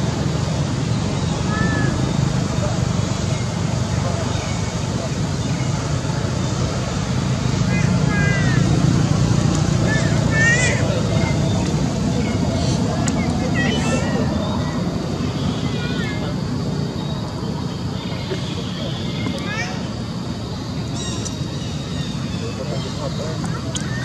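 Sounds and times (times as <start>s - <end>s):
low outdoor rumble: 0.0s - 24.0s.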